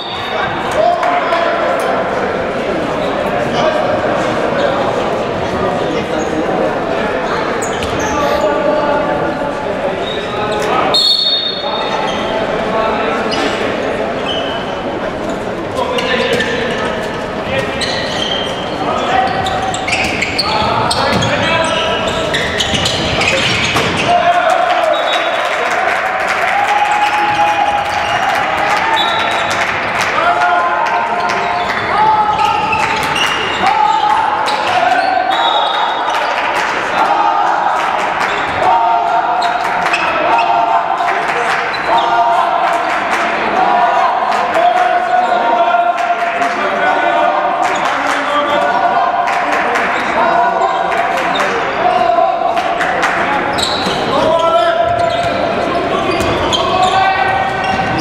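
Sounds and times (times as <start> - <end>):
players shouting: 0.0 - 58.0
ball bouncing on hall floor: 7.6 - 8.1, 19.4 - 21.8, 22.4 - 24.1.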